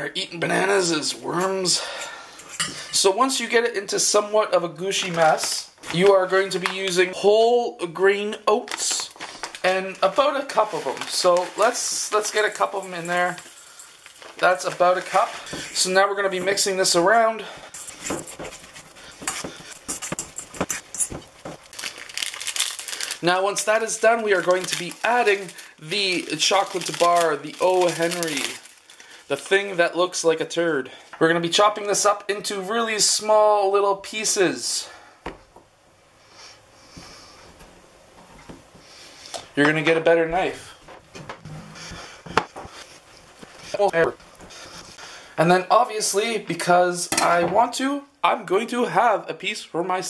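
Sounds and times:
person speaking: 0.0s - 21.2s, 23.0s - 28.7s, 29.3s - 35.0s, 39.5s - 42.6s, 43.5s - 50.0s.

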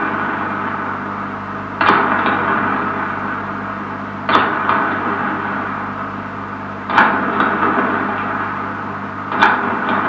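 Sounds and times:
sharp knocking hits: 1.8s - 2.9s.

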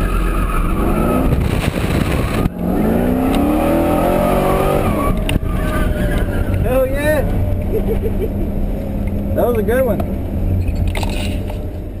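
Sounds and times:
car engine droning: 0.0s - 12.0s.

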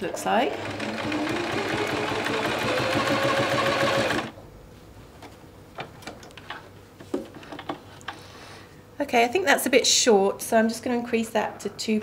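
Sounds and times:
sewing machine stitching: 0.5s - 4.3s.

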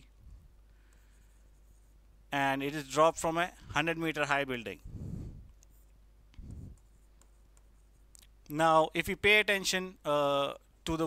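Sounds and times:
stylus writing on display board: 0.8s - 2.0s, 5.6s - 8.1s.

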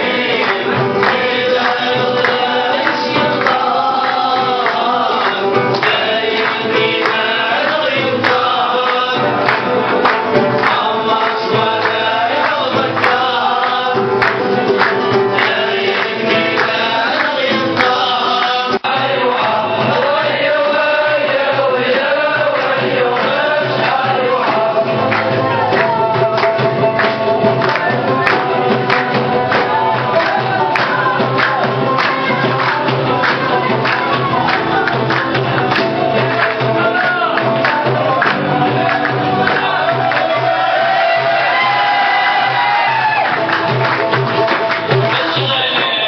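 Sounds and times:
live party music: 0.0s - 46.0s
men singing together: 0.0s - 46.0s
steady band beat: 0.0s - 46.0s
crowd cheering and whooping: 38.6s - 43.8s.

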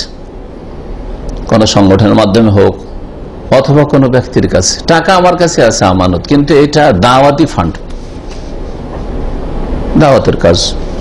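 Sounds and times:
recording hiss and low rumble: 0.0s - 11.0s.

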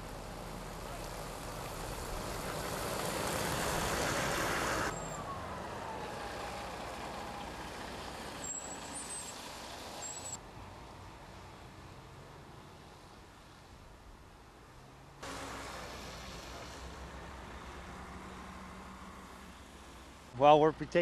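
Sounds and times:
truck pulling away with whine: 0.0s - 13.2s, 15.2s - 20.9s
heavy trucks driving on snowy road: 0.0s - 21.0s.

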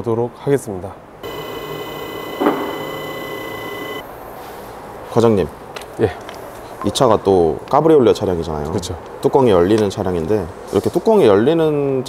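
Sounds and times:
mechanical motor whine: 1.2s - 4.0s.

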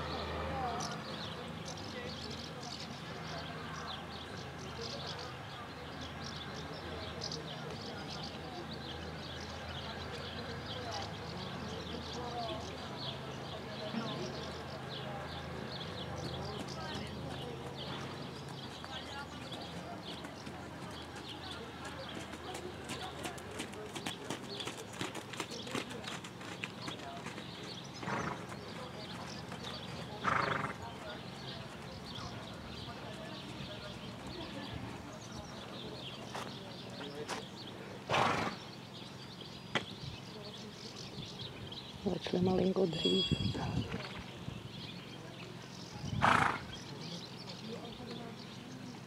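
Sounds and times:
horse hoofbeats: 15.8s - 34.8s
horse making short loud sound: 46.2s - 46.6s.

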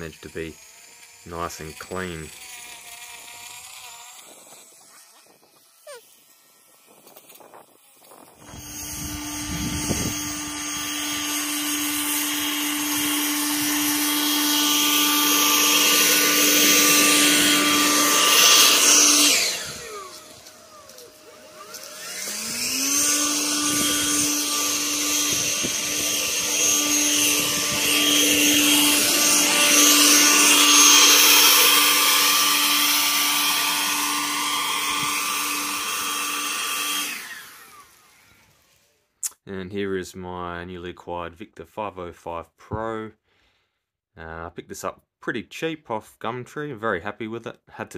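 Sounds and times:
electric garden tool motor running: 0.0s - 39.0s.

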